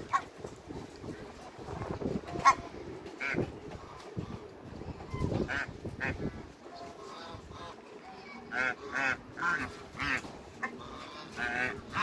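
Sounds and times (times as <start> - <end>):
ducks and geese calling: 2.1 - 12.0.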